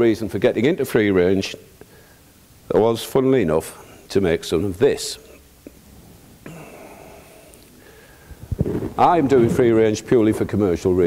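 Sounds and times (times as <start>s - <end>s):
man speaking: 2.7s - 5.4s, 9.0s - 11.0s.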